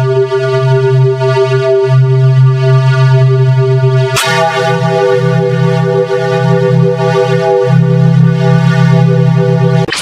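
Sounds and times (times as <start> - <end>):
synthesized buzzing tone: 2.0 - 10.0.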